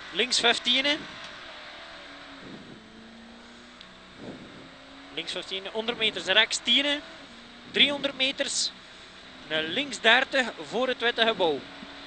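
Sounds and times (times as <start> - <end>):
car engine running: 0.0 - 12.0
road and tyre noise: 0.0 - 12.0.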